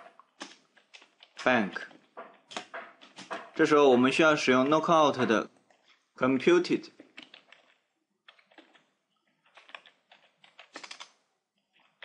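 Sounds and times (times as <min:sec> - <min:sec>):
typing on computer keyboard: 0:07.0 - 0:08.9, 0:09.5 - 0:11.2.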